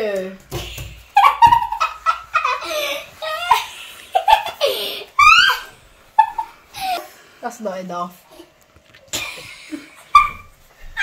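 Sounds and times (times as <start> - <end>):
children laughing: 0.6 - 7.0, 9.1 - 11.0.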